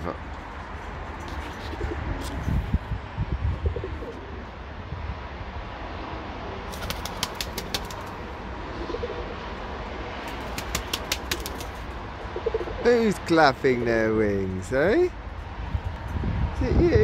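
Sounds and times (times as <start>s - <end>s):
pigeons cooing softly: 3.7s - 4.5s, 8.7s - 9.4s, 12.2s - 12.9s
pigeon wing claps: 6.7s - 8.2s, 10.3s - 11.8s.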